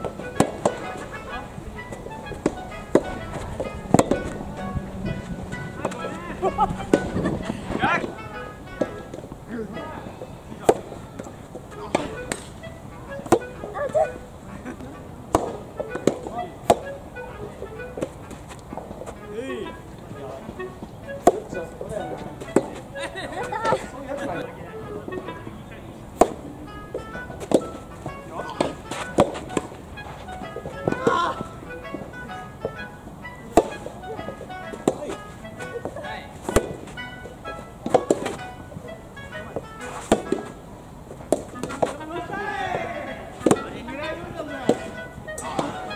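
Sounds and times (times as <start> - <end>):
rackets striking rubber ball: 0.0 - 1.2, 2.0 - 7.4, 10.6 - 14.2, 15.3 - 17.0, 21.1 - 21.8, 26.1 - 29.8, 30.4 - 32.0, 33.5 - 37.2, 37.8 - 38.5, 39.6 - 40.6, 41.2 - 42.1, 42.7 - 43.8
background music: 0.0 - 45.9.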